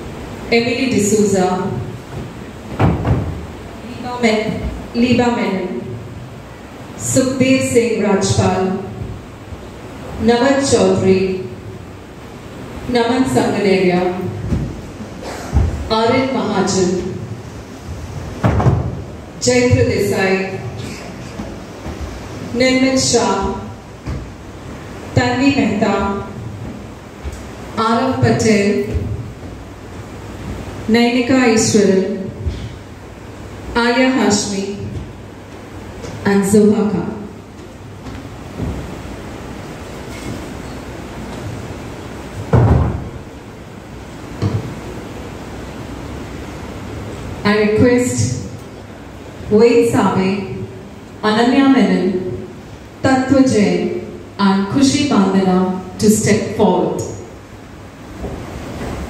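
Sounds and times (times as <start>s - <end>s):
low hall rumble: 0.0s - 59.0s
dull thumps: 1.7s - 3.6s, 17.8s - 22.2s
dull thump: 2.1s - 3.5s.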